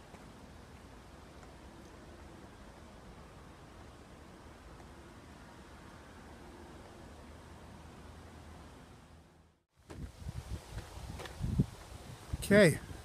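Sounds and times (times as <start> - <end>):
outdoor hiss with low rumble: 0.0 - 13.0.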